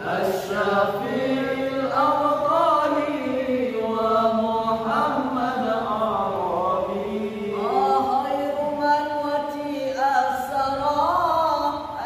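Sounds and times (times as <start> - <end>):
boys singing together: 0.0 - 12.0.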